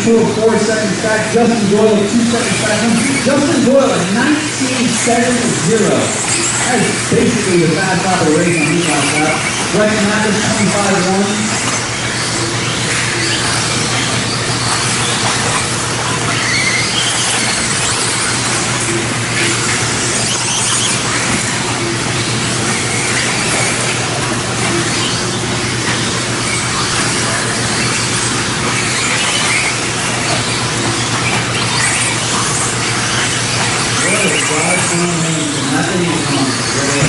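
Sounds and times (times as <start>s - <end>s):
electric toy car motors whining: 0.0s - 37.0s
steady low hum: 0.0s - 37.0s.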